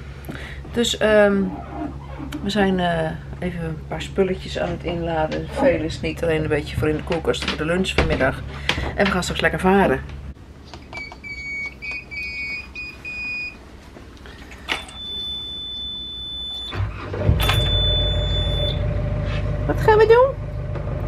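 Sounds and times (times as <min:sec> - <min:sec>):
short beeps from switch panel: 0:14.9 - 0:16.8, 0:17.4 - 0:18.8
boat engine starting and idling: 0:16.1 - 0:21.0
high warning buzzer: 0:17.4 - 0:19.0.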